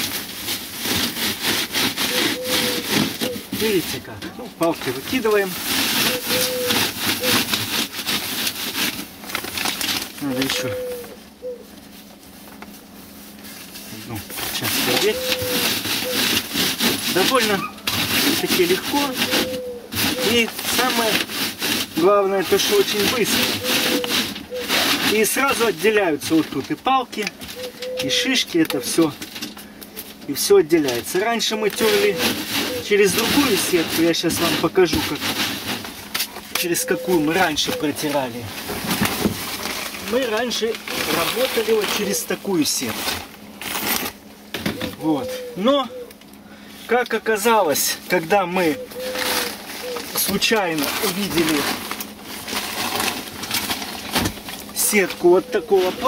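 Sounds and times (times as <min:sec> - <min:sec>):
dry moss rubbed on metal mesh: 0:00.0 - 0:10.7, 0:11.9 - 0:27.3, 0:30.3 - 0:44.1, 0:46.8 - 0:54.0, 0:54.8 - 0:56.0.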